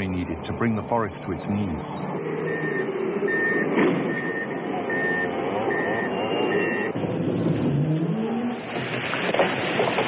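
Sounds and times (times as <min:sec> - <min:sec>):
reversing alarm beeping: 0:02.4 - 0:07.0
heavy machine engine running: 0:02.4 - 0:10.0.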